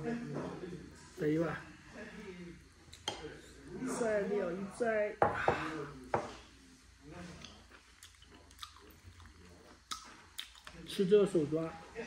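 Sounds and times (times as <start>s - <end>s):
man chewing: 7.4s - 10.8s
wet mouth sounds: 7.4s - 10.8s.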